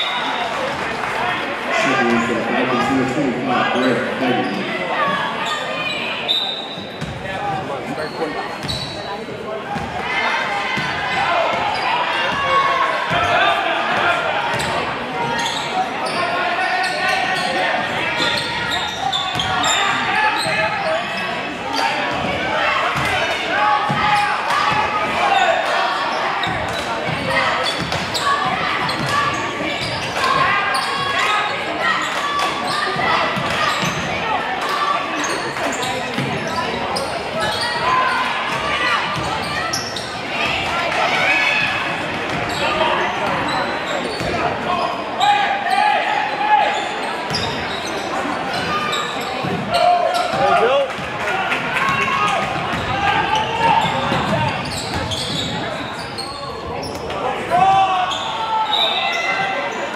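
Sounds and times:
crowd chatter: 0.0s - 59.9s.

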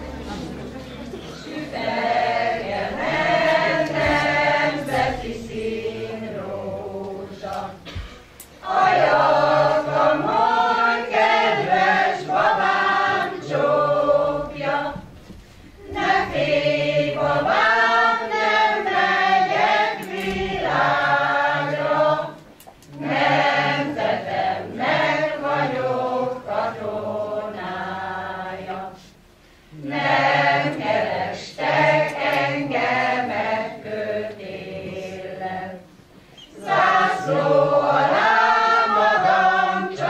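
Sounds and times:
choir singing unaccompanied: 0.0s - 40.0s.

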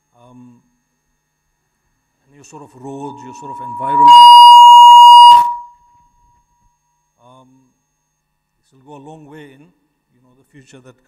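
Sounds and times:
microphone feedback howl: 2.7s - 5.8s.

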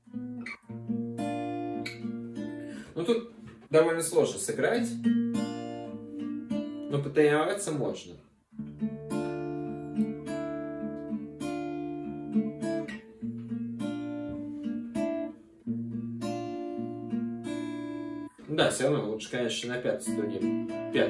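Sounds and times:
fingerstyle acoustic guitar: 0.0s - 7.4s, 8.5s - 21.0s.

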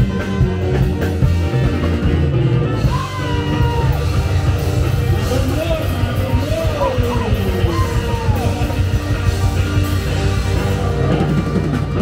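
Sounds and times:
live band playing loud music: 0.0s - 12.0s
person singing and yelling: 5.2s - 9.0s.

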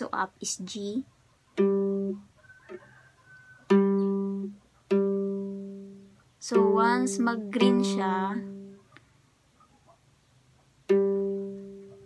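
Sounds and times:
ukulele string plucked and ringing: 3.7s - 8.8s, 10.9s - 12.0s.

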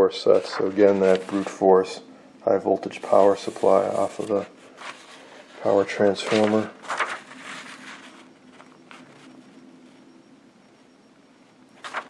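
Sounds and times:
low steady hum: 0.0s - 12.0s
paper pages rustling: 0.3s - 1.7s, 2.9s - 10.1s, 11.8s - 12.0s.

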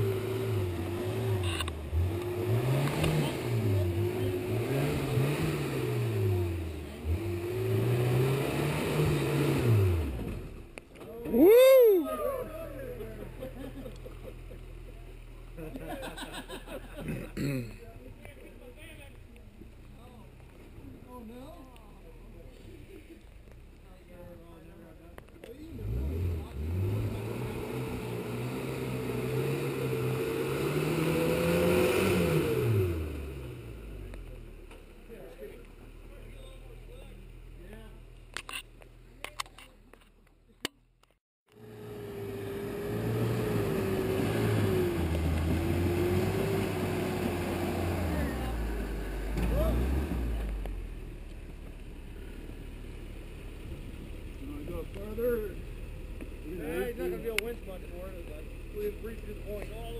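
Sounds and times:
truck engine revving under load: 0.0s - 10.8s, 25.7s - 34.4s, 41.5s - 51.3s.

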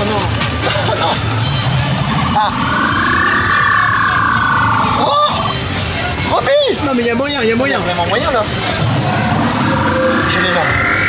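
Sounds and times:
funfair background din: 0.0s - 11.0s
short rising yelp: 1.3s - 5.6s, 8.8s - 11.0s.

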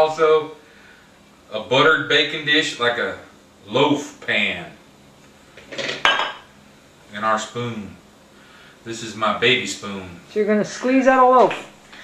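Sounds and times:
glass dish clattering on stone: 5.7s - 6.5s.

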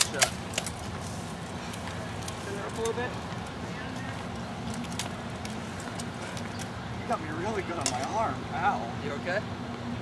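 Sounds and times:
low outdoor background hum: 0.0s - 10.0s.

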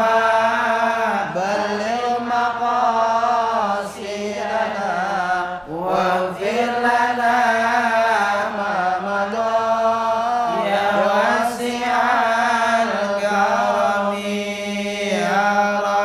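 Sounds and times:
men chanting in unison: 0.0s - 16.0s.

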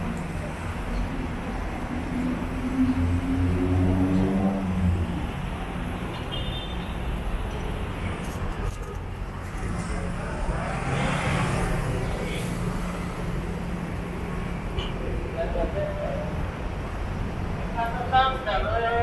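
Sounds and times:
road traffic rumble: 0.0s - 19.0s
vehicle passing: 2.1s - 5.4s.

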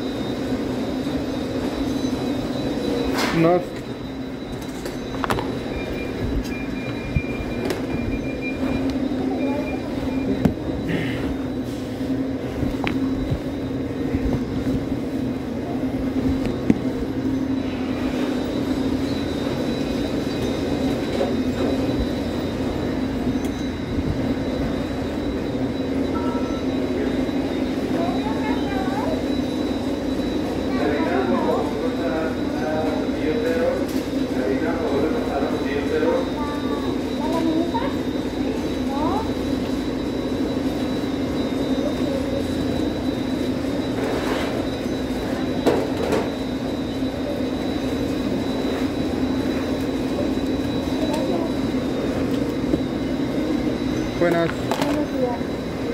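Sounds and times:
mechanical equipment hum: 0.0s - 55.9s
thin high whine: 0.0s - 55.9s.

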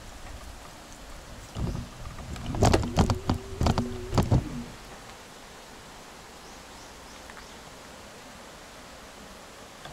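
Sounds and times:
sharp knocks and rattles: 1.6s - 4.5s.

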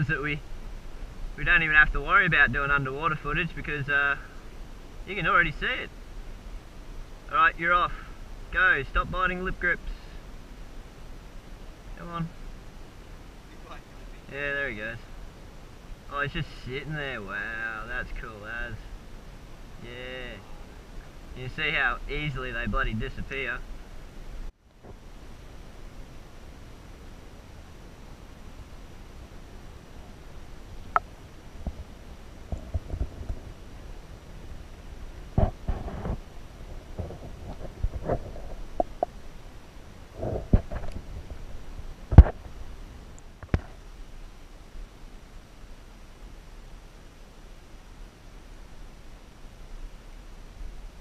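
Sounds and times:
faint steady hiss: 0.0s - 51.0s
underwater rumble on camera: 29.8s - 42.8s.

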